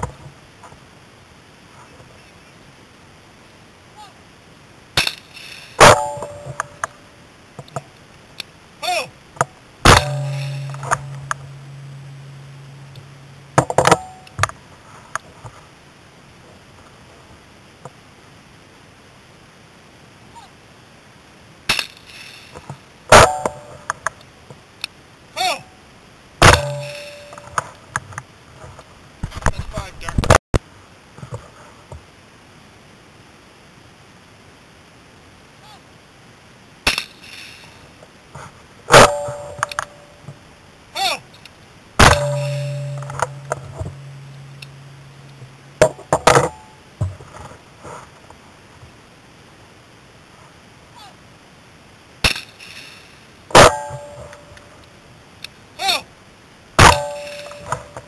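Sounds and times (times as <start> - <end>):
shotgun shot: 9.8 - 11.3, 26.4 - 27.4, 42.0 - 43.9
sharp clack: 9.8 - 14.5, 26.4 - 27.8, 42.0 - 46.6, 56.8 - 58.0.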